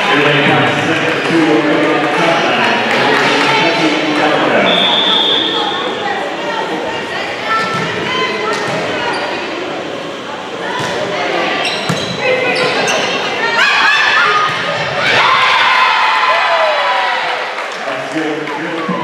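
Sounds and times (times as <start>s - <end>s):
voices in a gymnasium: 0.0s - 19.0s.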